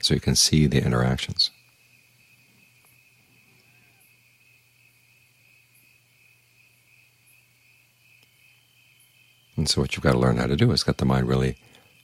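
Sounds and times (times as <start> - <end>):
crickets trilling: 0.0 - 12.0
low steady hum: 0.0 - 12.0
soft high chirp: 1.3 - 4.3.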